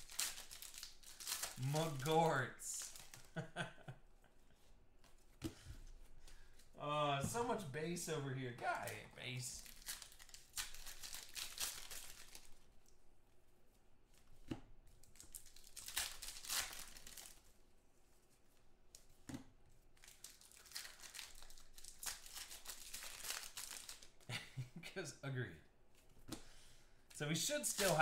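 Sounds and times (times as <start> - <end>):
foil wrappers tearing and crinkling: 0.0 - 3.4, 9.6 - 12.6, 15.1 - 17.5, 20.0 - 24.2, 27.4 - 28.0.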